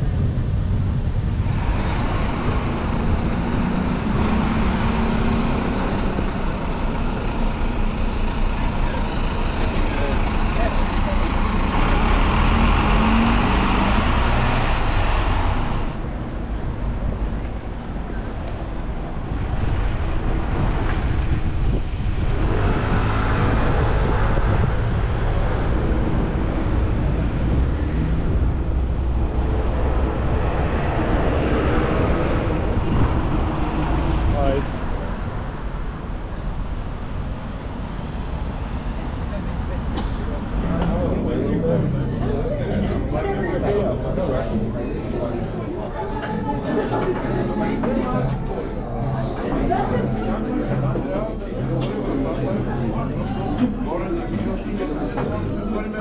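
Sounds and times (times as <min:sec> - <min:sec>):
buses and cars passing: 0:00.0 - 0:56.0
rumble of engines and tyres: 0:00.0 - 0:56.0.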